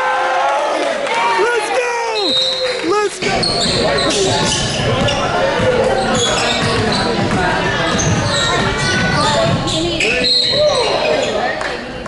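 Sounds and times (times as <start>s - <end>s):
basketball bouncing on hardwood: 4.4s - 9.8s.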